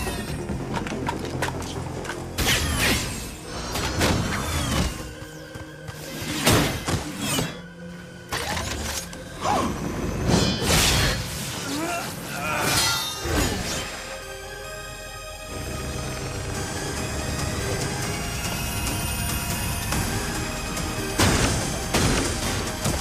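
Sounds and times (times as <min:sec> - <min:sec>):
action background music: 0:00.0 - 0:23.0.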